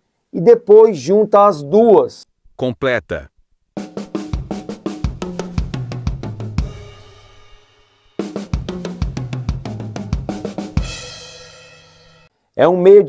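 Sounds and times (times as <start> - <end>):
drum fill on toms and snare: 3.8 - 12.3
bass drum kicks: 4.4 - 7.0.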